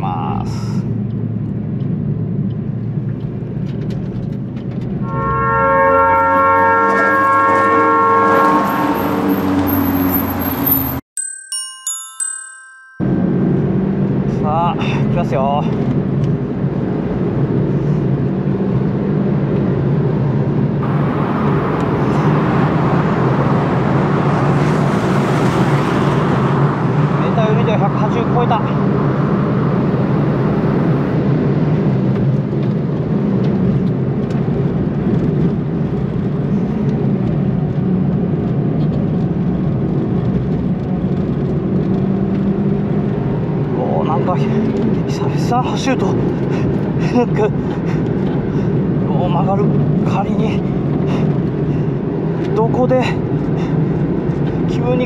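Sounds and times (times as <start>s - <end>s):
wind and road noise: 0.0s - 11.0s, 11.9s - 55.0s
car engine drone: 13.0s - 55.0s.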